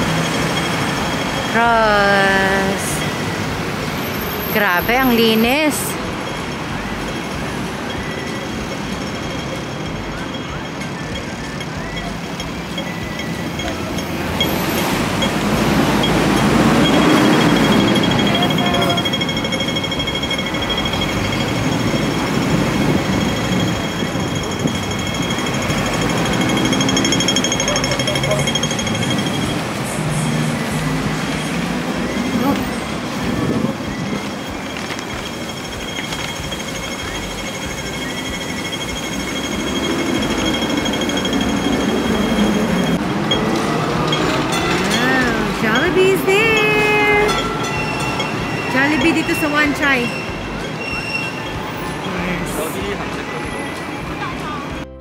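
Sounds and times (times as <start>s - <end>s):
steady high tone: 0.0s - 54.9s
road traffic: 0.0s - 55.0s
people's voices: 1.3s - 3.7s, 4.3s - 35.8s, 36.8s - 55.0s.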